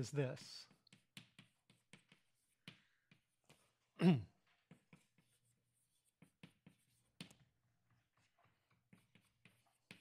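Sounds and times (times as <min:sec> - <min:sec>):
chalk tapping and scraping on blackboard: 0:00.0 - 0:10.0.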